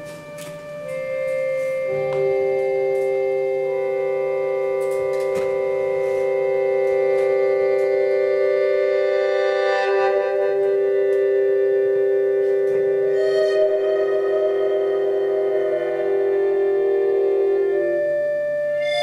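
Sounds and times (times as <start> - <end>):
accordion chord: 0.0 - 19.0
double bass: 0.0 - 19.0
electric guitar: 0.0 - 19.0.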